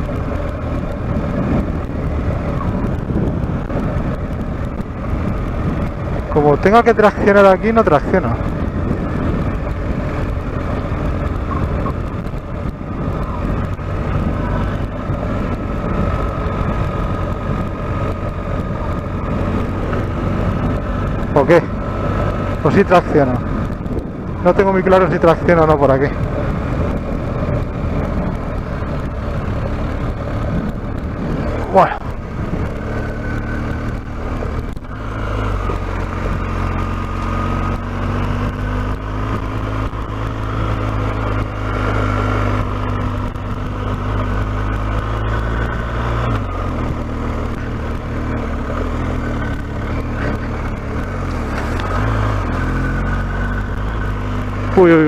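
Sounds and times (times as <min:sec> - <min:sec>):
motorcycle engine pulling: 0:00.0 - 0:55.0.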